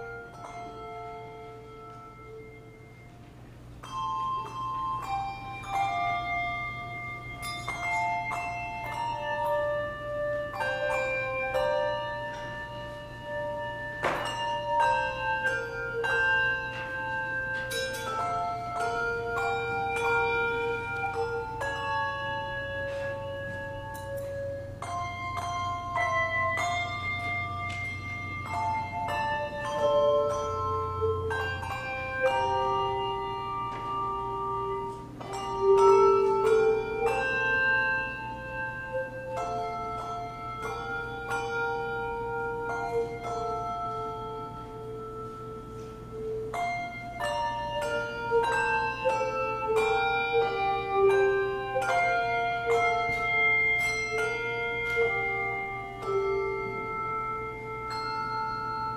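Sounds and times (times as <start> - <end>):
handbell choir ringing: 0.0 - 58.9
low steady hum: 0.0 - 58.9.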